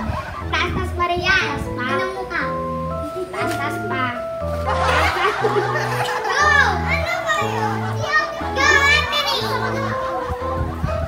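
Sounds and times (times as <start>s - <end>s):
girls giggling and squealing: 0.0s - 0.8s, 2.9s - 3.8s, 4.5s - 11.0s
background song with bass line: 0.0s - 11.0s.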